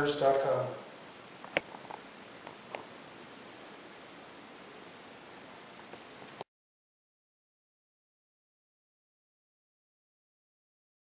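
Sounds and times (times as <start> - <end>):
faint steady hiss: 0.0 - 6.5.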